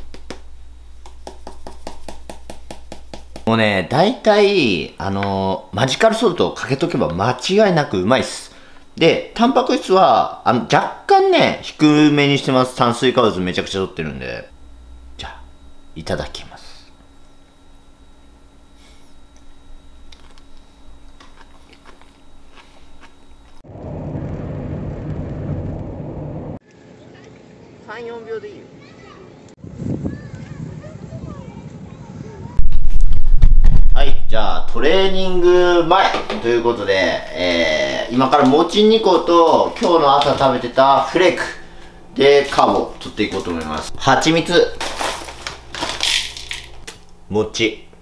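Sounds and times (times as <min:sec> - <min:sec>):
loud steady low noise: 0:32.5 - 0:47.8
cereal rustling in plastic bag: 0:44.6 - 0:46.8.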